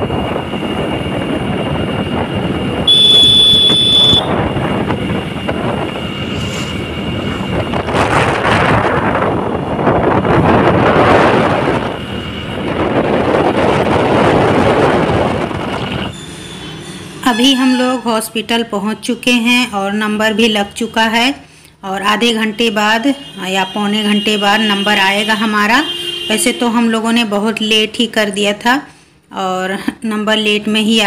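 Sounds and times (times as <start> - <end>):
wind on microphone: 0.0 - 16.2
road noise: 0.0 - 31.0
vehicle horn: 2.8 - 4.6, 22.6 - 26.9.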